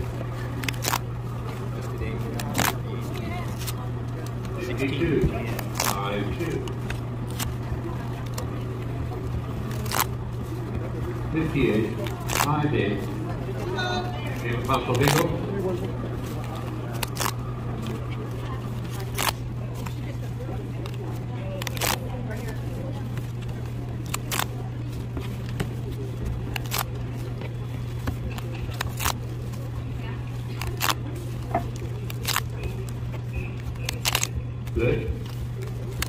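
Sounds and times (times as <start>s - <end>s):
paper rustling: 0.0s - 36.0s
paper tickets tearing: 0.0s - 36.0s
steady low hum: 0.0s - 36.0s.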